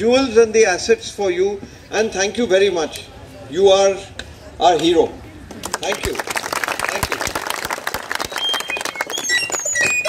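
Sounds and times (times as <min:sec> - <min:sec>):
audience applause: 0:05.6 - 0:10.0.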